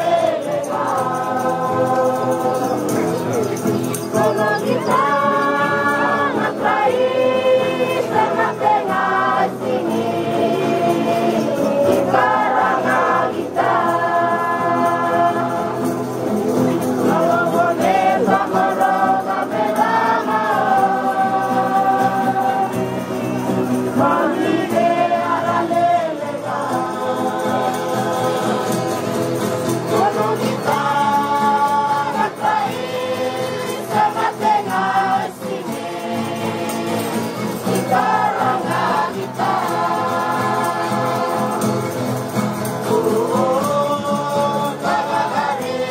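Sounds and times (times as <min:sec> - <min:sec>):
choir singing a hymn: 0:00.0 - 0:45.9.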